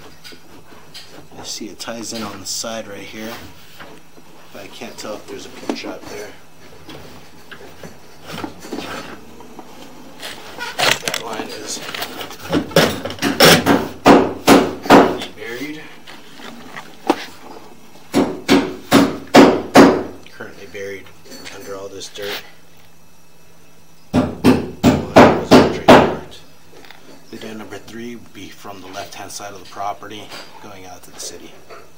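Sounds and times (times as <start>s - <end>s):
hard knocking in rapid bursts: 12.5s - 15.2s, 18.1s - 20.2s, 24.1s - 26.3s.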